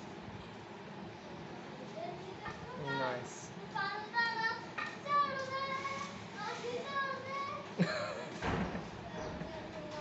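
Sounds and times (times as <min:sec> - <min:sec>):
high-pitched voices chattering: 0:01.2 - 0:08.0.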